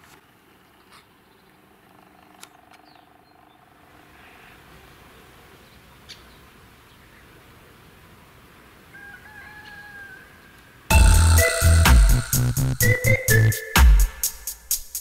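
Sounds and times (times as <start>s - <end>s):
quiet outdoor background noise: 0.0s - 15.0s
distant rooster crowing: 8.8s - 10.8s.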